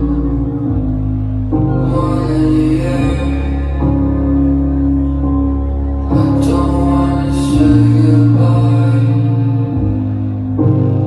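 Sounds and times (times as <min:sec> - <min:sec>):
live concert music: 0:00.0 - 0:11.0.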